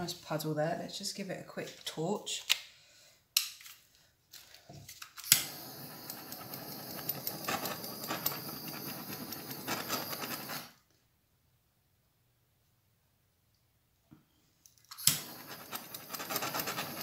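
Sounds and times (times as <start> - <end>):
gas torch ignition click: 5.2 - 10.7, 14.9 - 17.0
gas torch flame hissing: 5.3 - 10.8, 14.9 - 17.0.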